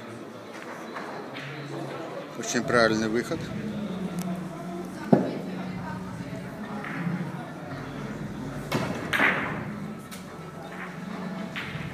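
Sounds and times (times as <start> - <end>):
large hall hum: 0.0 - 11.9.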